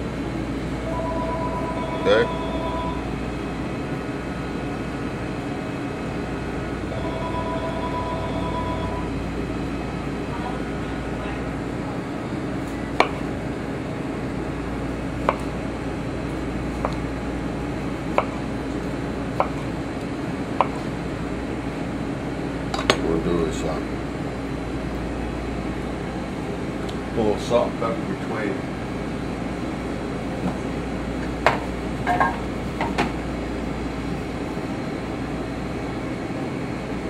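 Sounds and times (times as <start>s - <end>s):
steady background hum: 0.0s - 37.0s.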